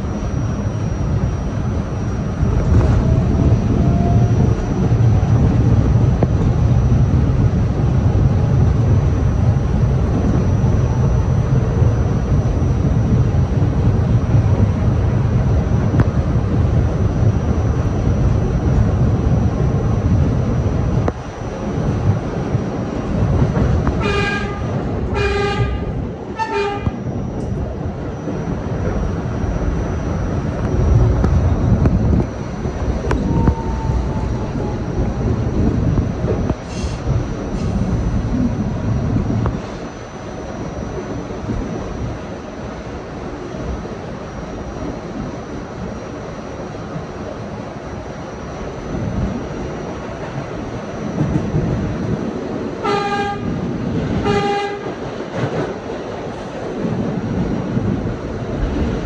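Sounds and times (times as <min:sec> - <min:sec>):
subway train wheels rumbling on rail: 0:00.0 - 0:59.0
subway horn toots: 0:23.8 - 0:27.2, 0:52.7 - 0:55.2.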